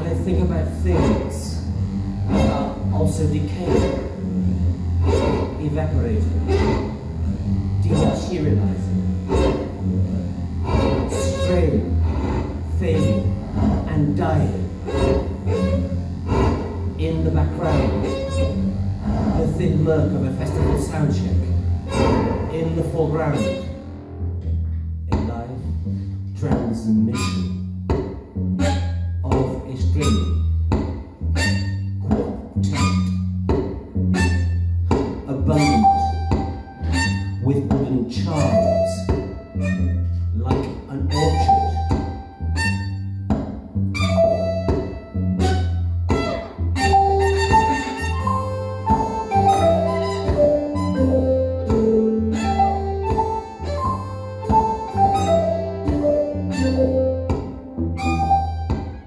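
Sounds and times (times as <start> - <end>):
melodic line of notes: 0.0 - 24.8, 35.4 - 37.5, 38.3 - 43.3, 43.9 - 59.0
heavy low pulse: 0.0 - 59.0.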